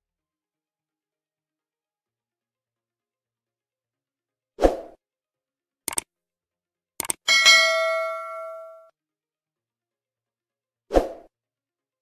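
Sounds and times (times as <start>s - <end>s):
quick double clicks: 5.9s - 6.1s, 7.0s - 7.2s
bell ding: 7.3s - 8.9s.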